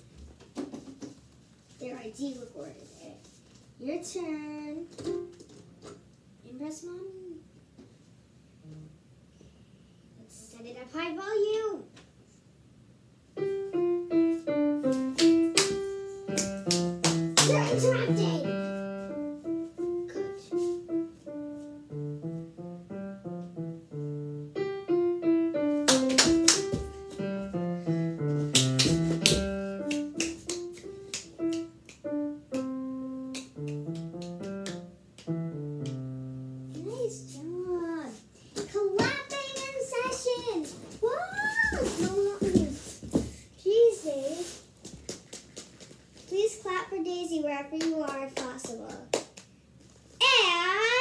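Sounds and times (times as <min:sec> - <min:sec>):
digital piano piece: 0:13.3 - 0:37.7.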